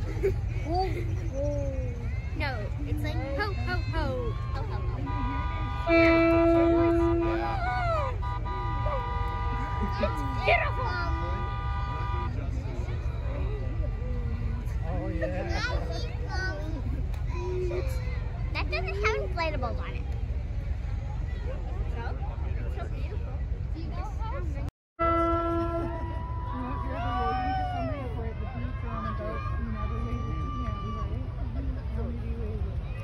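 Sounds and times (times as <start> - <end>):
faint voices: 0.0 - 33.0
horn blast: 4.4 - 12.6, 25.0 - 27.3.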